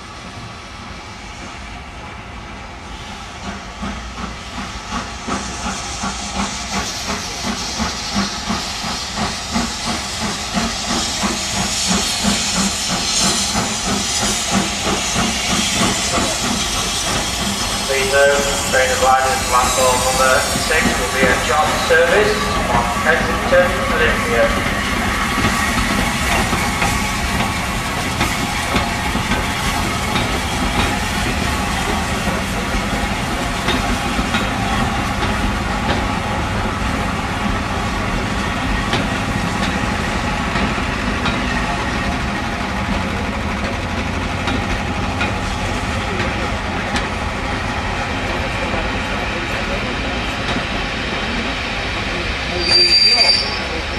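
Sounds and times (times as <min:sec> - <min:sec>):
train wheels rumbling on rail: 0:00.0 - 0:53.9
wheel squeal: 0:52.5 - 0:53.8.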